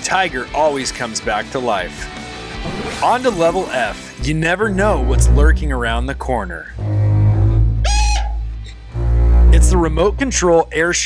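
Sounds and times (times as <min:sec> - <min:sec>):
music with deep bass: 0:04.0 - 0:11.0
high-pitched shriek: 0:06.8 - 0:08.8.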